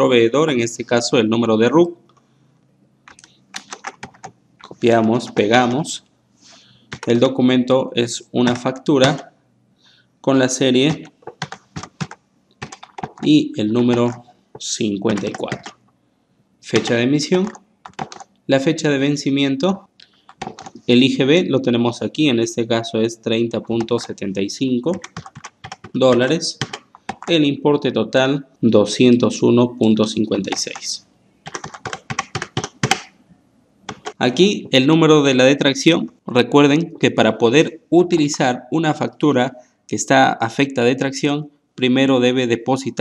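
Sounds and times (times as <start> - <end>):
computer keyboard typing: 3.1 - 6.0, 6.9 - 7.3, 8.4 - 9.3, 10.6 - 15.8, 16.7 - 18.4, 20.0 - 20.9, 23.5 - 27.4, 30.4 - 33.2, 33.9 - 34.8.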